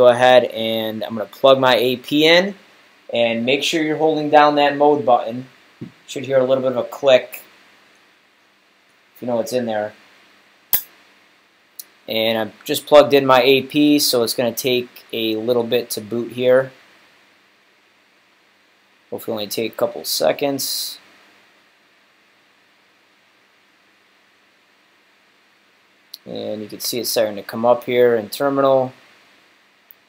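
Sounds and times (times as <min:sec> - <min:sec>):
faint steady hiss: 0:00.0 - 0:30.0
sharp click: 0:10.7 - 0:11.0.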